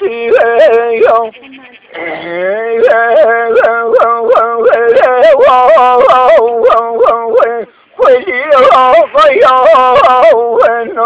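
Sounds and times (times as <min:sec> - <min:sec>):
man singing unaccompanied: 0:00.0 - 0:01.4, 0:02.0 - 0:11.0.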